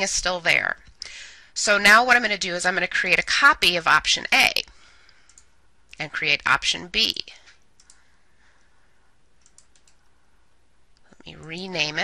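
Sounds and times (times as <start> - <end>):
computer mouse clicks: 5.1 - 5.5, 7.8 - 8.1, 9.4 - 10.0.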